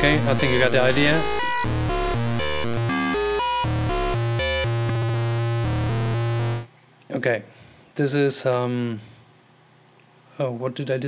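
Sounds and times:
low synth drone: 0.0s - 6.7s
synthesizer sequencer notes: 0.0s - 6.7s.

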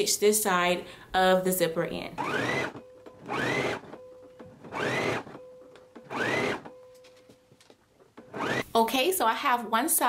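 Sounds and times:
electric sewing machine running: 2.2s - 5.4s, 6.0s - 6.7s, 8.3s - 8.7s.

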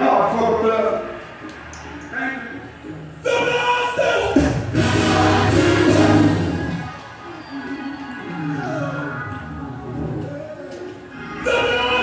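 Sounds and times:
gospel choir singing: 3.2s - 6.9s, 11.2s - 12.0s.

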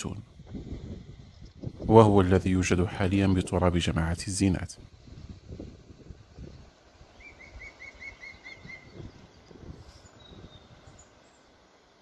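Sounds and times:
small bird calling: 7.1s - 11.5s.

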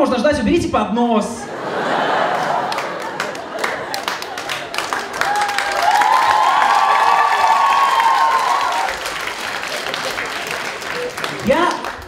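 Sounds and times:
audience applauding: 1.8s - 12.0s.

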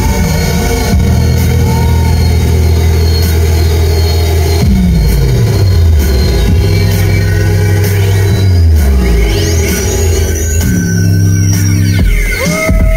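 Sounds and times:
electronic dance music: 0.0s - 12.9s.

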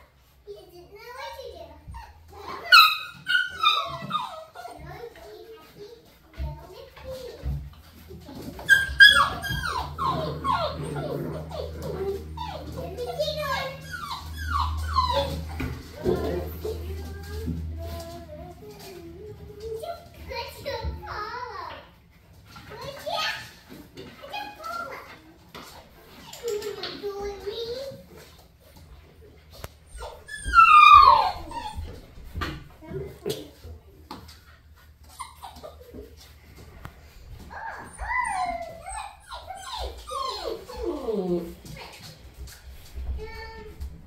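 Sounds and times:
puppies whimpering and yipping: 1.8s - 5.2s, 7.0s - 20.4s, 29.5s - 32.3s, 34.7s - 36.4s, 37.4s - 42.2s
puppy whine falling in pitch: 30.0s - 31.8s, 37.5s - 41.3s.

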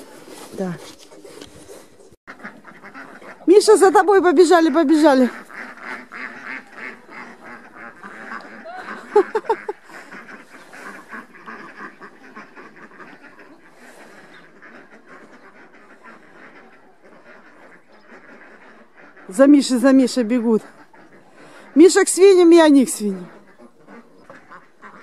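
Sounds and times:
ducks quacking: 0.0s - 25.0s.

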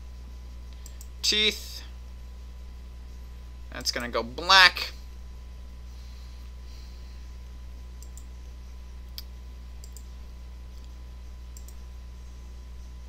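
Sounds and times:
low electrical hum: 0.0s - 13.0s
computer mouse clicking: 0.7s - 1.1s, 8.0s - 8.3s, 9.1s - 10.1s, 10.7s - 11.8s.

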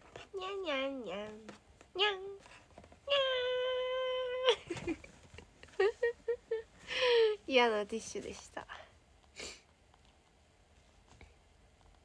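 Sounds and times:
woman imitating cat meow: 3.1s - 4.6s.

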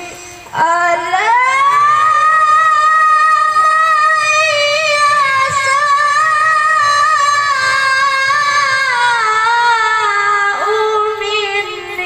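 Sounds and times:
boy reciting through a microphone: 0.0s - 12.0s.

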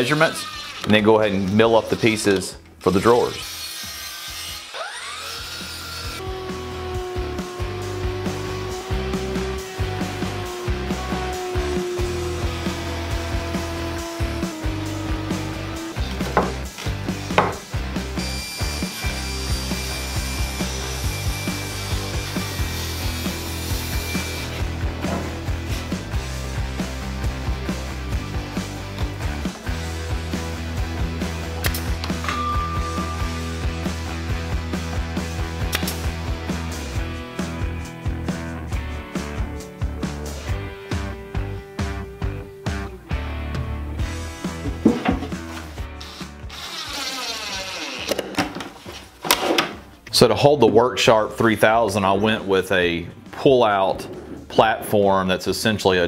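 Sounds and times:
miter saw cutting wood: 0.0s - 2.3s, 2.9s - 16.2s, 18.0s - 24.8s, 46.0s - 48.2s
background music: 0.0s - 46.9s, 48.7s - 56.0s.

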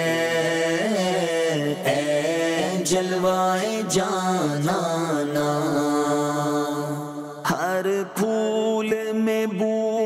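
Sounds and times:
person singing devotional song: 0.0s - 10.0s.

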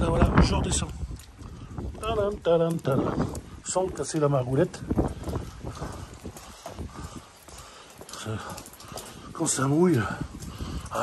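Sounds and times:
footsteps on wet stone steps: 0.0s - 11.0s
rain falling: 0.0s - 11.0s.

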